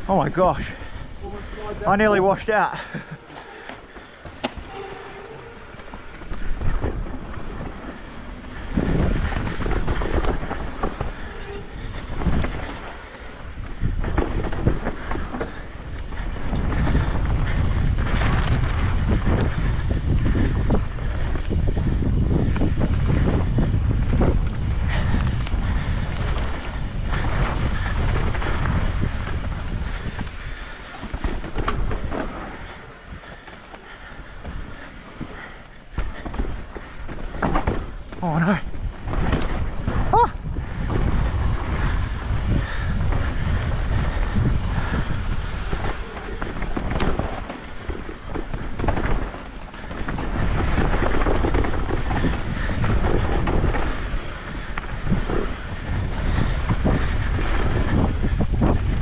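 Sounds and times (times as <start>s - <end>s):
bike tyre noise on dirt: 0.0s - 59.0s
wind rushing across microphone: 0.0s - 59.0s
bike knocks and rattles: 3.0s - 59.0s.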